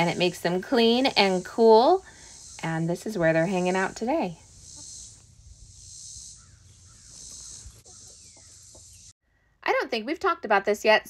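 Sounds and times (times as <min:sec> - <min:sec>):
high insect drone: 0:01.4 - 0:02.6, 0:04.2 - 0:09.1
faint bird calls: 0:04.6 - 0:09.1.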